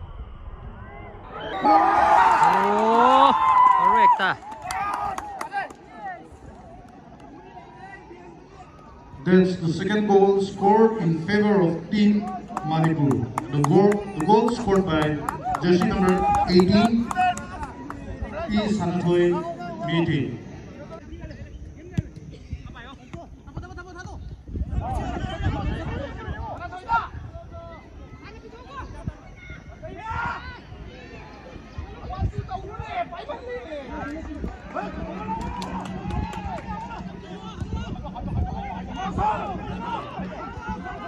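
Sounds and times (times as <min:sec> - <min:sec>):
low background rumble: 0:00.0 - 0:02.6
crowd shouting and cheering: 0:00.0 - 0:20.1, 0:33.0 - 0:41.0
people clapping: 0:02.0 - 0:07.4, 0:12.2 - 0:18.8, 0:34.8 - 0:37.6.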